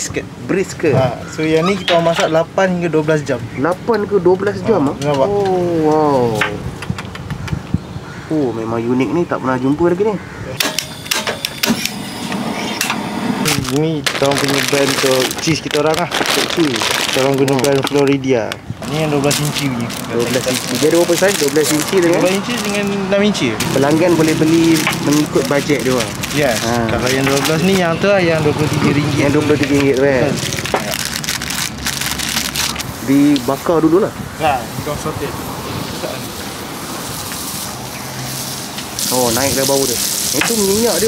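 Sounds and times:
plastic wrap crinkling: 13.5s - 23.0s, 23.6s - 27.9s, 29.7s - 33.0s
gas burner hiss: 35.8s - 41.0s.

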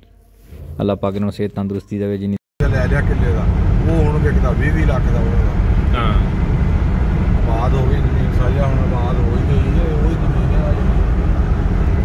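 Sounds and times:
car road and engine rumble: 2.6s - 12.0s.

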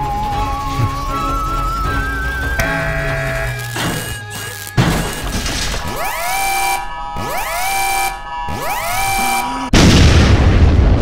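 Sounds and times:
rising electronic tone: 0.0s - 9.8s
score music: 0.5s - 9.7s
sudden crash: 9.7s - 11.0s.

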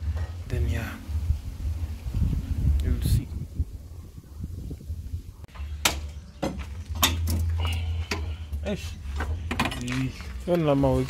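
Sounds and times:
low rumble: 0.0s - 5.7s.

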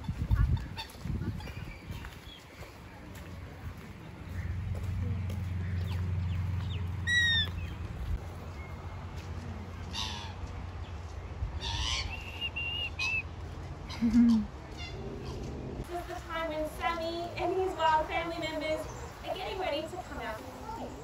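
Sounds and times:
birds calling: 0.0s - 21.0s.

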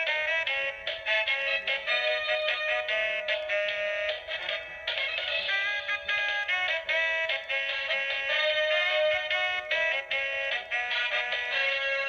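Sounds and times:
thin electronic melody: 0.0s - 12.0s.

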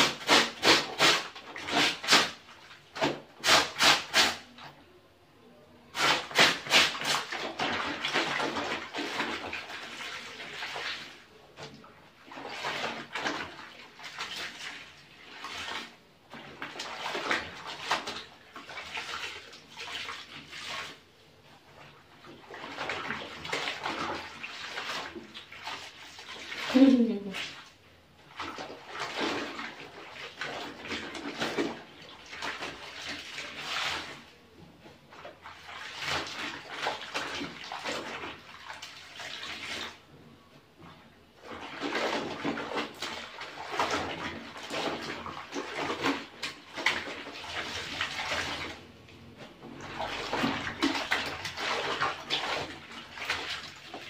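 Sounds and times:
water sloshing in a basin: 0.0s - 54.0s.

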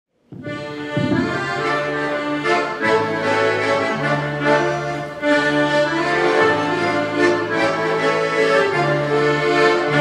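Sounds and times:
accordions playing folk tune: 0.3s - 10.0s.

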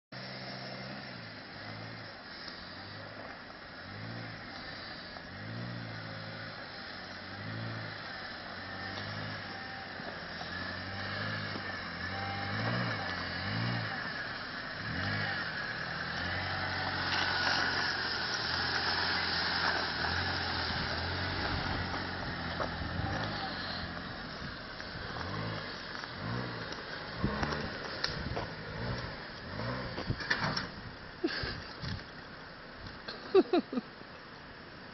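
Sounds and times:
car engine revving: 0.2s - 32.6s.

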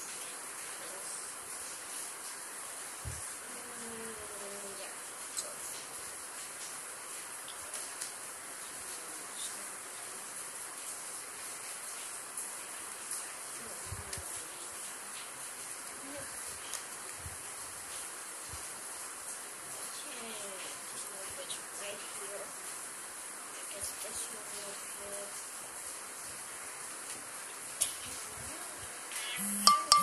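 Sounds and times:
steady high hiss: 0.0s - 30.0s.

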